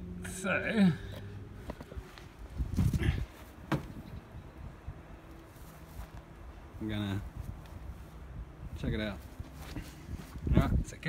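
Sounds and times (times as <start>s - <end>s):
handling knocks and thumps: 2.6s - 4.2s.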